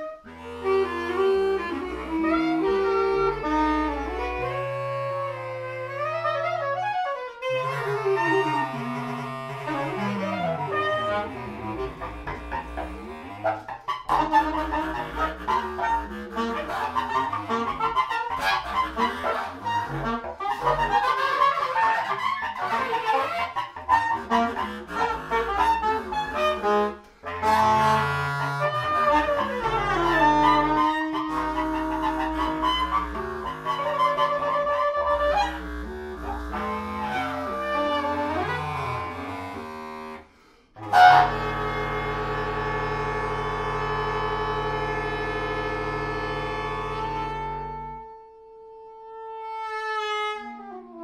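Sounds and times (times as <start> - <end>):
saxophones improvising: 0.0 - 48.2.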